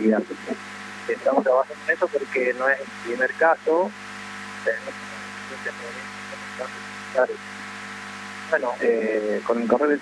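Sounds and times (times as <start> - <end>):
electrical hum with tones: 0.0 - 10.0
faint broken man's voice: 8.6 - 10.0.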